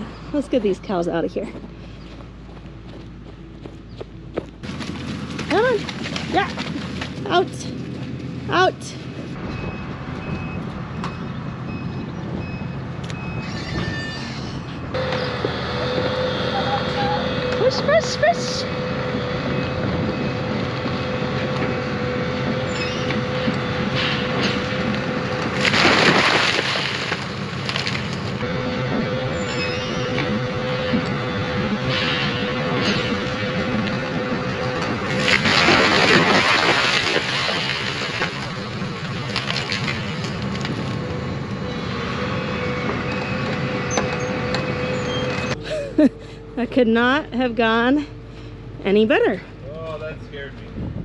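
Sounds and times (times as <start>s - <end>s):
excavator running under load: 0.0s - 51.0s
tree trunk cracking: 25.4s - 28.4s, 35.1s - 40.9s.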